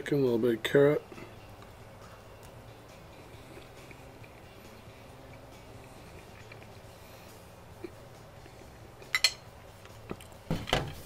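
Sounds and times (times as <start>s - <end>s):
low room hum: 0.0s - 11.0s
person chewing food: 1.2s - 9.1s.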